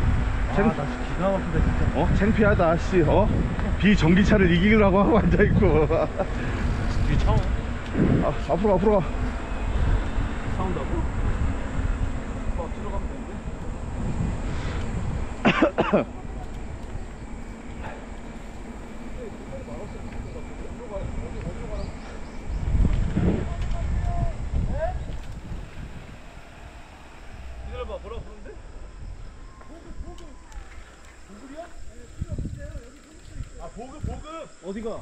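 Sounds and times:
wind rushing over microphone: 0.0s - 35.0s
faint voices: 6.3s - 34.6s.

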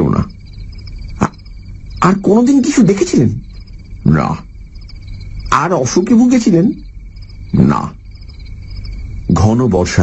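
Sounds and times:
crickets chirping: 0.0s - 10.0s
frog croaking: 0.0s - 10.0s.

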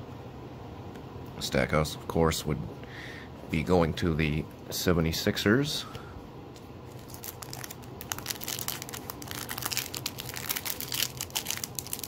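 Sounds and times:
foil wrapper crinkling: 6.9s - 12.0s.

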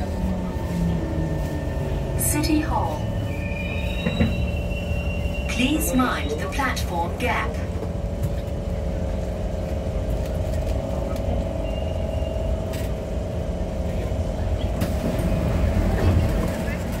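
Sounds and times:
train electric whine: 0.0s - 17.0s.

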